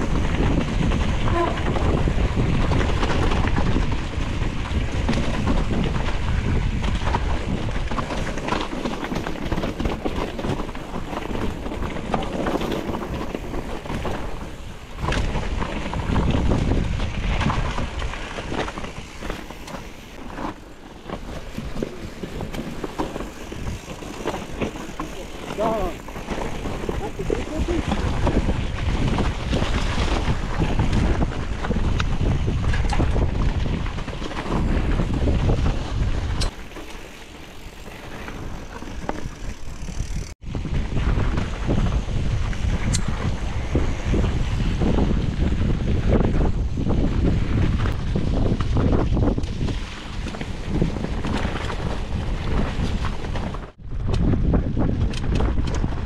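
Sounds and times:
bike rattles and knocks: 0.0 - 56.0
bike tyre noise: 0.0 - 56.0
wind buffeting microphone: 0.0 - 56.0.

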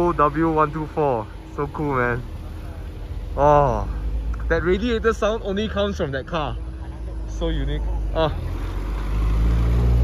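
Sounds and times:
car engine at low revs: 0.0 - 10.0.

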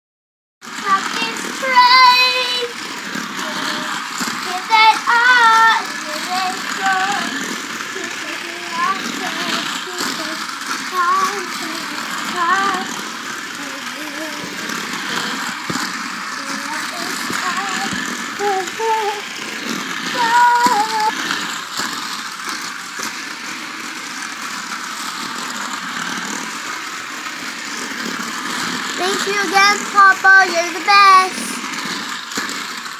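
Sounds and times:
toy car motor whirring: 0.6 - 32.9.

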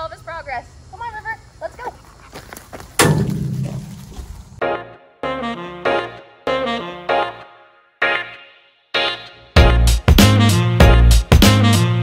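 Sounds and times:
thump with low rumble: 3.0 - 4.5
background music with saxophone: 4.6 - 12.0.

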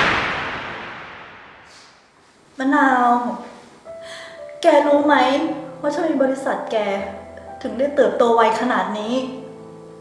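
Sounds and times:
noisy whoosh: 0.0 - 2.2.

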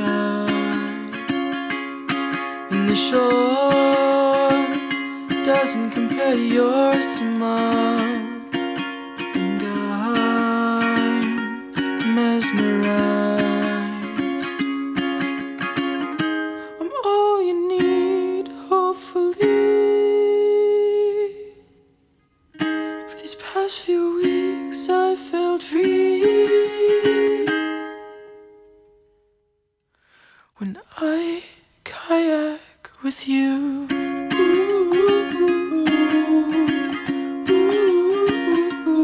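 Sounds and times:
hummed melody: 0.0 - 21.8, 22.9 - 28.7, 33.4 - 39.0
plucked ukulele chords: 0.0 - 21.8, 22.5 - 29.3, 33.5 - 39.0.

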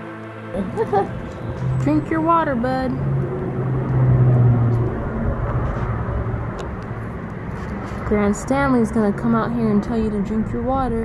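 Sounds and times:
low engine rumble: 0.6 - 11.0.

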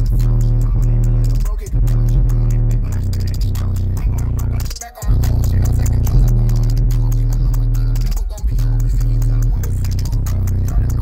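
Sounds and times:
loud bass-heavy music: 0.0 - 11.0.

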